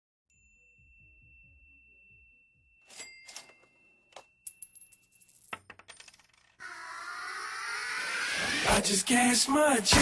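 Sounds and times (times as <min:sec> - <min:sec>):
metallic clinks and ticks: 0:02.8 - 0:05.8.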